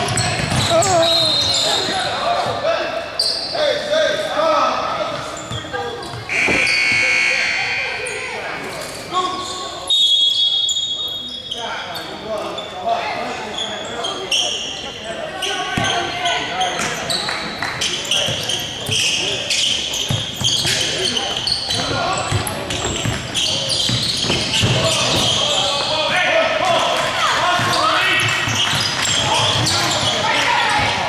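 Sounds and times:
voices echoing in a gym: 0:00.0 - 0:31.0
basketball bouncing on hardwood: 0:00.4 - 0:00.7.

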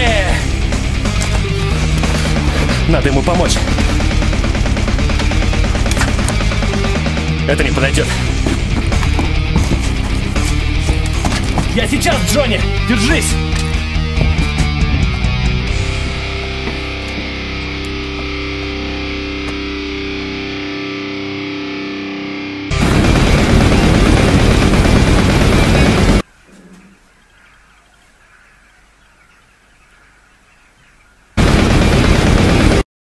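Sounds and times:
distorted electric guitar music: 0:00.0 - 0:26.2
loud rushing noise bursts: 0:22.7 - 0:26.2.

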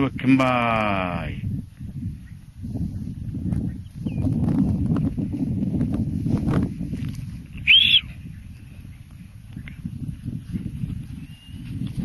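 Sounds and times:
short loud whistle: 0:07.6 - 0:08.1.

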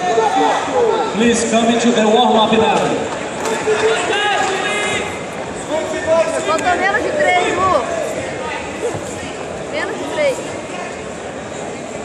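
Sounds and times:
busy hall background noise: 0:00.0 - 0:12.0.

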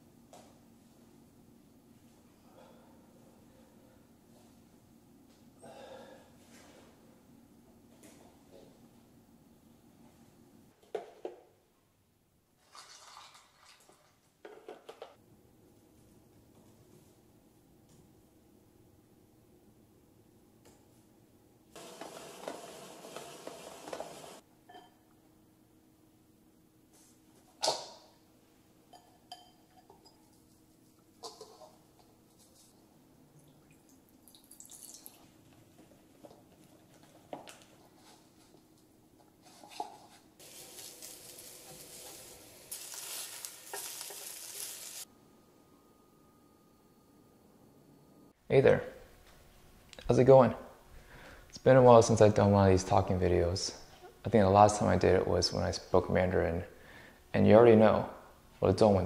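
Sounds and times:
food sizzling in a pan: 0:21.8 - 0:24.4, 0:40.4 - 0:45.1
utensil stirring in pan: 0:39.4 - 0:45.1
faint steady hum: 0:45.0 - 0:59.0.

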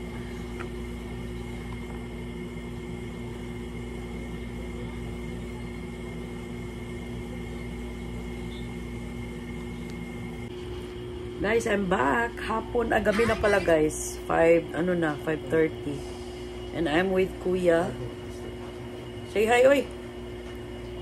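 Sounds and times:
faint high whine: 0:00.0 - 0:13.8
machine hum: 0:00.0 - 0:21.0.

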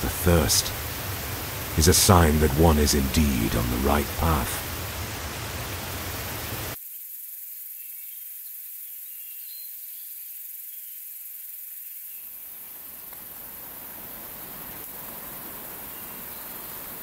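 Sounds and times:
forest hiss: 0:00.0 - 0:17.0.

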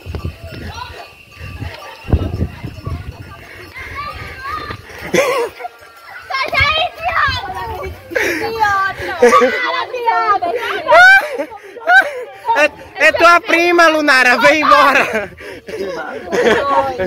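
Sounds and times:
girls' excited voices and laughter: 0:00.0 - 0:17.0
loud cry: 0:10.6 - 0:12.1.

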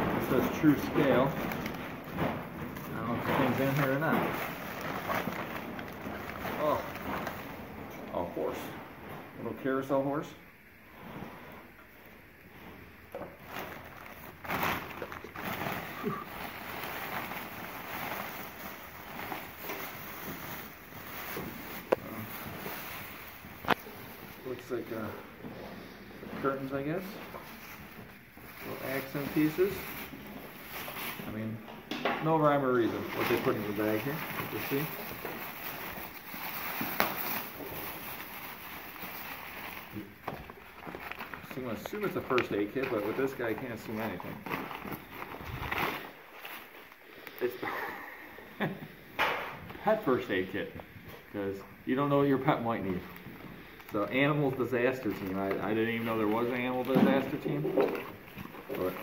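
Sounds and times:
plastic bags rustling: 0:00.0 - 0:11.0, 0:11.6 - 0:48.9, 0:49.6 - 0:59.0
paper wrapping crinkling: 0:00.1 - 0:08.7, 0:13.2 - 0:25.4, 0:26.4 - 0:31.6, 0:32.3 - 0:47.6, 0:52.1 - 0:59.0.

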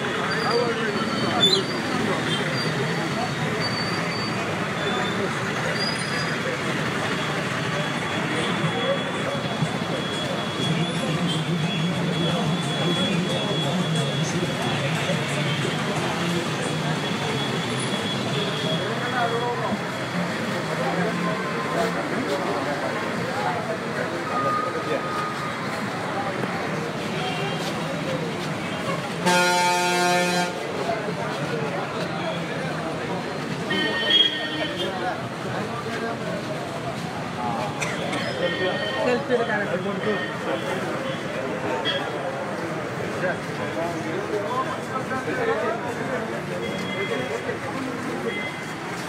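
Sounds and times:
auto-rickshaw engines idling: 0:00.0 - 0:49.0
crowd chatter: 0:00.0 - 0:49.0
traffic din: 0:00.0 - 0:49.0
vehicle horn: 0:28.9 - 0:30.6.

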